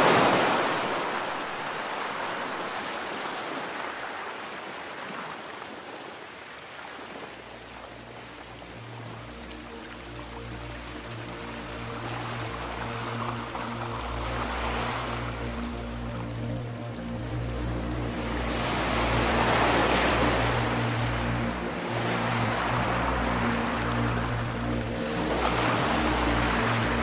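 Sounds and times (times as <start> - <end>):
ocean waves washing in: 0.0 - 27.0
ambient music with low notes: 6.8 - 27.0.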